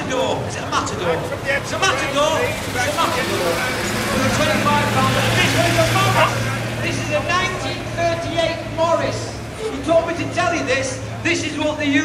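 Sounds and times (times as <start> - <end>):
truck engine driving past: 0.0 - 11.9
voices: 0.0 - 12.0.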